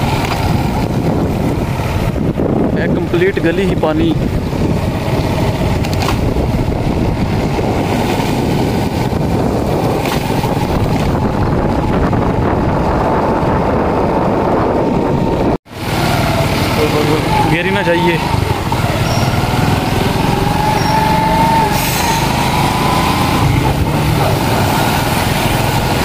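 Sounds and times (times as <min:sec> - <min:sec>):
motorcycle engine running: 0:00.0 - 0:26.0
wind rush and road noise: 0:00.0 - 0:26.0.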